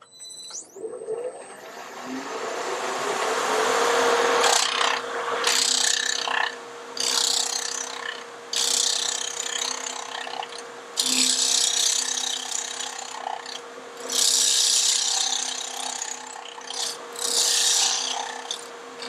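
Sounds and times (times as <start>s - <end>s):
lathe humming: 1.4s - 19.0s
gouge cutting spinning wood: 1.5s - 19.0s.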